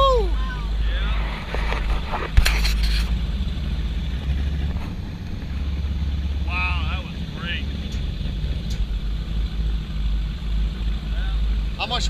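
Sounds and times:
boat engines rumbling: 0.0s - 12.0s.

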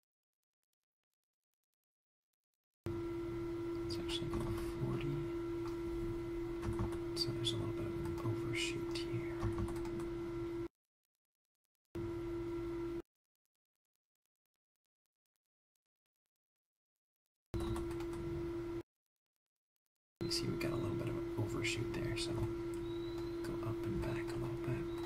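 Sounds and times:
steady electrical hum: 2.9s - 10.7s, 12.0s - 13.0s, 17.6s - 18.8s, 20.2s - 25.0s
computer keyboard clicks: 6.6s - 7.0s, 9.4s - 10.1s.

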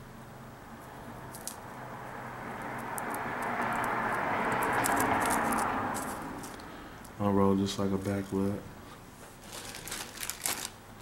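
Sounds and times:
dry crackles of leaf wrap handled: 9.3s - 10.8s.

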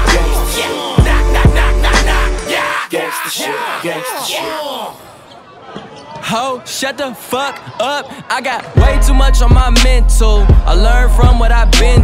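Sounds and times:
hip-hop track: 0.0s - 5.0s, 6.2s - 12.0s
man rapping: 0.0s - 5.0s, 6.3s - 12.0s.

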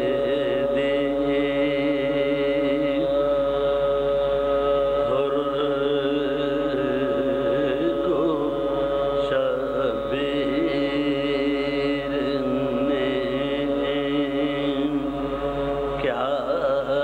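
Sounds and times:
steady held drone: 0.0s - 17.0s.

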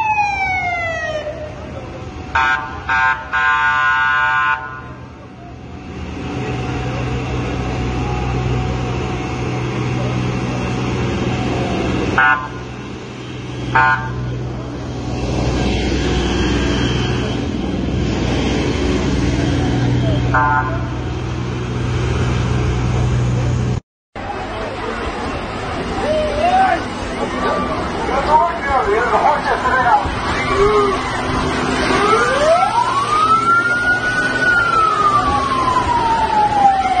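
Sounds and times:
vehicle horn toot: 12.2s - 12.6s, 20.3s - 20.9s
steady background noise: 22.8s - 37.0s
siren winding up and down: 30.2s - 37.0s.

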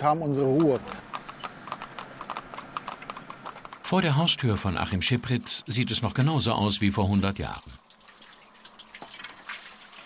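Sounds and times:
horse hooves clip-clopping on asphalt: 0.0s - 6.4s.

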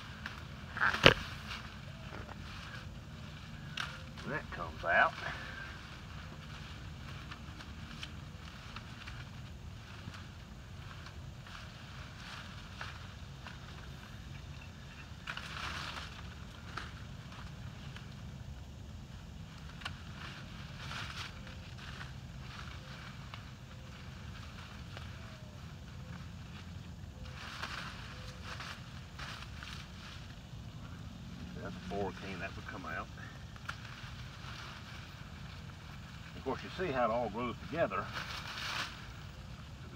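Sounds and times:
canes and leaves rustling: 0.0s - 39.9s
steady low rumble: 0.0s - 39.9s
pruners cutting: 0.1s - 9.4s.

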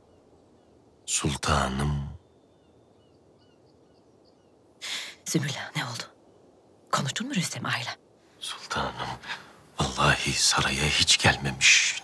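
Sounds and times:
faint bird chirps: 0.0s - 9.2s.

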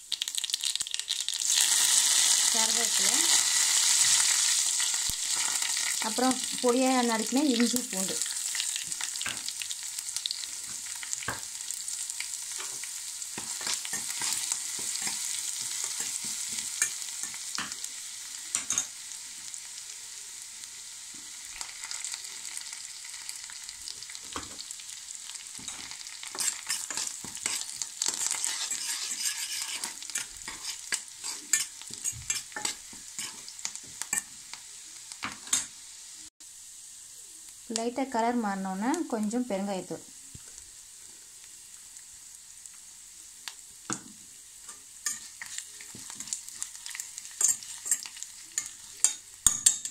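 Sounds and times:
crackles and pops: 0.0s - 1.6s, 4.0s - 6.5s
spices sizzling in a pan: 0.0s - 49.9s.

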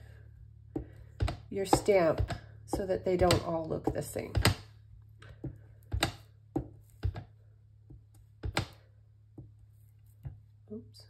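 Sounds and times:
steady low hum: 0.0s - 11.0s
stamp block tapping: 7.9s - 8.8s.

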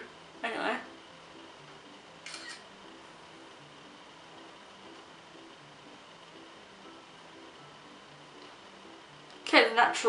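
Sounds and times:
faint piano music: 0.0s - 10.0s
camera shutter double-click: 2.2s - 2.6s.

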